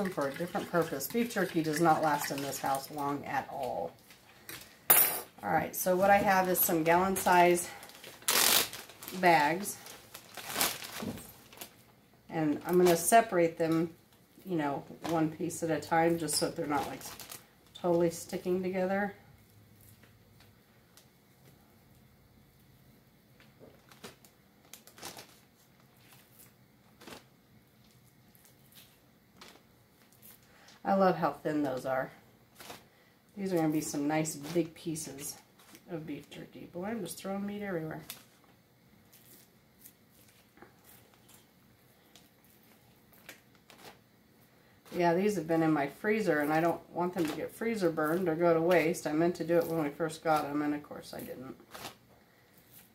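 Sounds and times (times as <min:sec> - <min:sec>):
plastic bag rustling: 0:05.8 - 0:12.0, 0:14.6 - 0:18.1, 0:23.6 - 0:30.8, 0:32.5 - 0:35.9, 0:38.0 - 0:44.1, 0:51.2 - 0:52.9
rustles and clicks of handling: 0:33.5 - 0:35.9.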